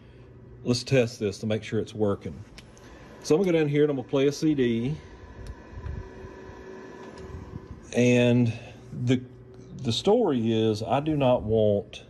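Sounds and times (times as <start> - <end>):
faint steady hum: 0.0 - 12.0
low handling rumble: 1.7 - 12.0.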